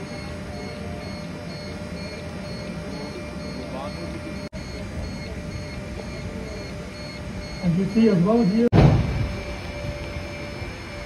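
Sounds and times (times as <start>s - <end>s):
faint voices: 0.0s - 11.0s
loading equipment humming: 0.0s - 11.0s
rapid high beeping: 0.0s - 11.0s.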